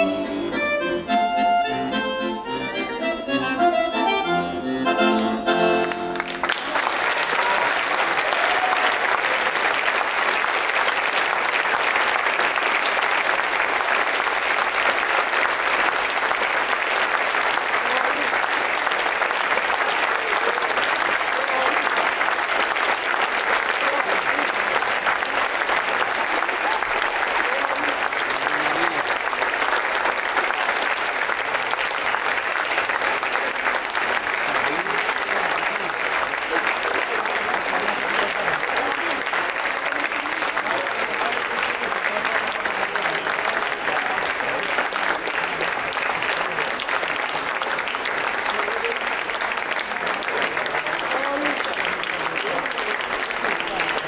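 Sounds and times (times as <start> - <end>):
audience applauding: 5.1 - 54.0.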